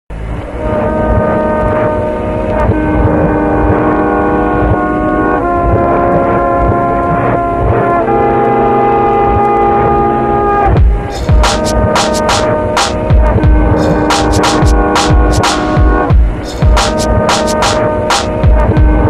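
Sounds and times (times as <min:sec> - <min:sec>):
sustained chords: 0:00.1 - 0:19.0
low pulsing beat: 0:10.7 - 0:19.0.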